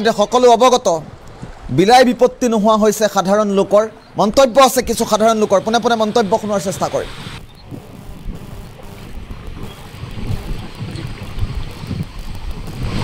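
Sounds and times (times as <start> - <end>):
wind buffeting microphone: 1.0 - 1.9, 7.1 - 13.0.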